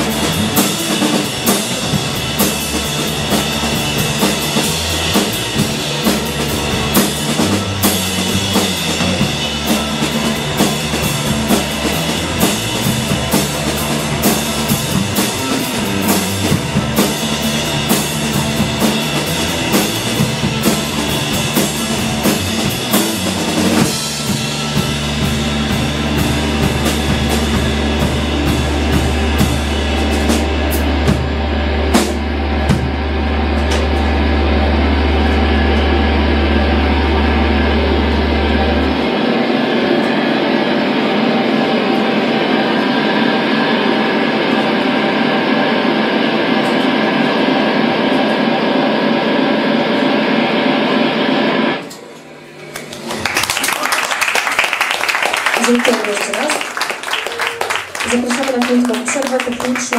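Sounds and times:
drums and cymbals crashing: 0:00.0 - 0:51.7, 0:54.7 - 0:59.9
low bass drone: 0:00.0 - 0:53.5
droning guitar amp wash: 0:00.0 - 0:59.9
held electric guitars: 0:00.0 - 0:59.9.

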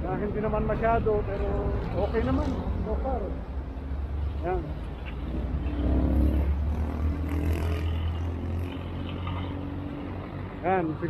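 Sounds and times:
vehicle passing rumble: 0:00.0 - 0:11.0.

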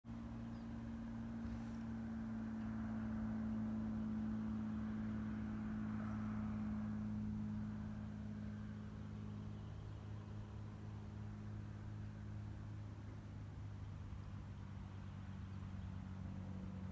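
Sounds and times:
propeller plane engine droning: 0:00.1 - 0:16.9.

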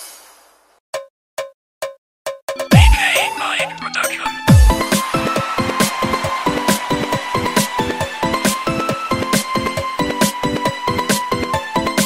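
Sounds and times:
dj mix music: 0:02.6 - 0:12.0.

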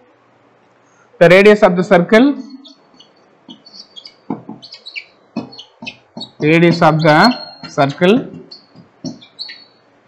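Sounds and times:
small birds chirping: 0:02.3 - 0:10.0
soft knocks: 0:04.2 - 0:04.7, 0:05.4 - 0:07.0, 0:07.6 - 0:09.5.

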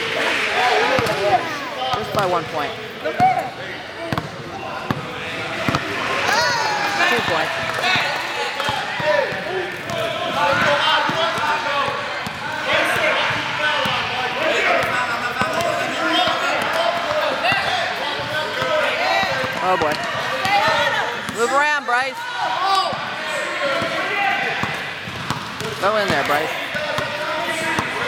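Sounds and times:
babble of many voices: 0:00.0 - 0:28.0.

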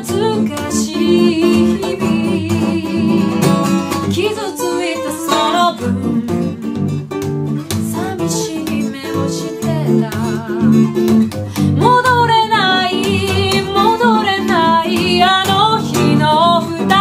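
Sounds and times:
woman singing ballad: 0:00.0 - 0:06.9, 0:07.6 - 0:17.0
acoustic guitar: 0:00.0 - 0:17.0.

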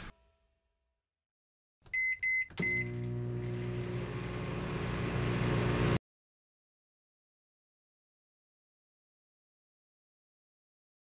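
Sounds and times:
microwave keypad beeping: 0:01.9 - 0:03.2
microwave oven humming: 0:02.0 - 0:06.0.

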